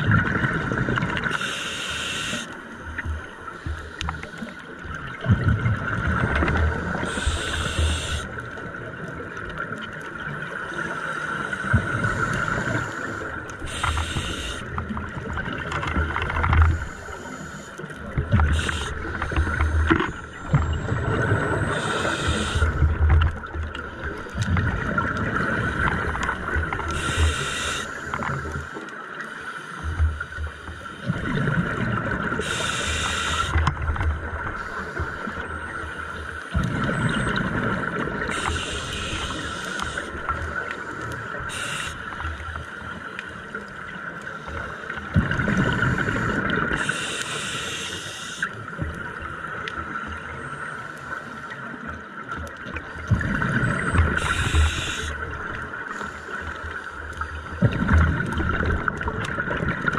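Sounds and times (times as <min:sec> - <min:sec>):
regulator hissing inhales: 0:01.4 - 0:02.5, 0:07.1 - 0:08.3, 0:12.4 - 0:14.6, 0:18.5 - 0:19.6, 0:21.7 - 0:22.8, 0:27.0 - 0:28.7, 0:32.4 - 0:33.6, 0:38.3 - 0:40.1, 0:41.5 - 0:42.1, 0:46.1 - 0:48.6, 0:54.2 - 0:55.1.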